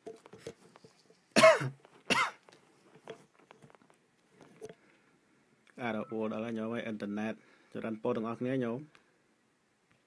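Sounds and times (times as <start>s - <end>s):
person coughing: 1.4s - 2.4s.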